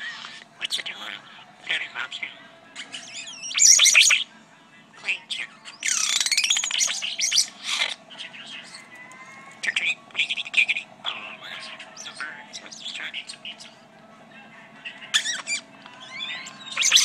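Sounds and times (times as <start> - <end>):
starling singing: 0.0 - 17.0.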